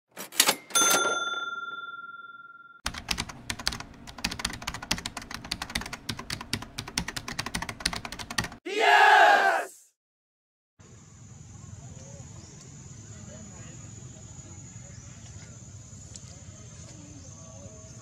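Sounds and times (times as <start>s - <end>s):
bell-like ding: 0.5s - 2.8s.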